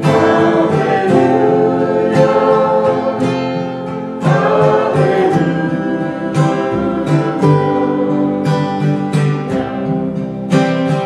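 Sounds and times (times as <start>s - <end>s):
woman singing: 0.0s - 9.5s
acoustic guitars strummed: 0.0s - 11.0s
double bass plucked: 0.0s - 11.0s.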